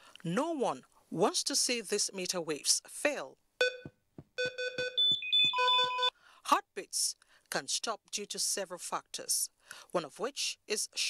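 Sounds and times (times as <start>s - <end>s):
patient monitor alarm beeping: 3.6s - 6.1s.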